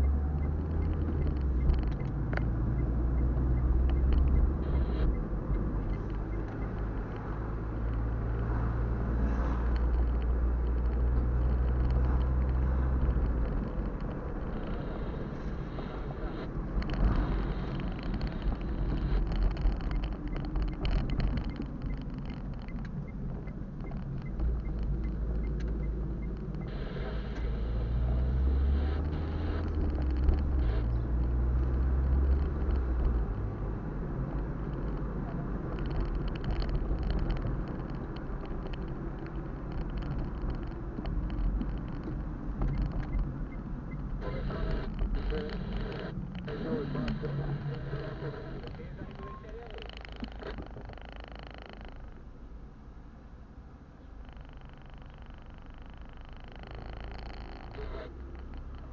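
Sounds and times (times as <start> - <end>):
car engine and tyre rumble: 0.0 - 58.9.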